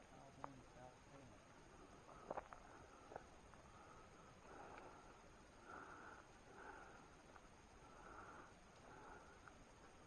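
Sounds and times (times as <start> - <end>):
soft breaths close to microphone: 1.7 - 10.0.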